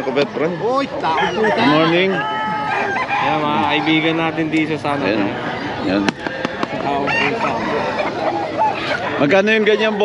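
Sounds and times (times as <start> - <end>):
rooster crowing: 1.0 - 4.2, 7.0 - 8.3.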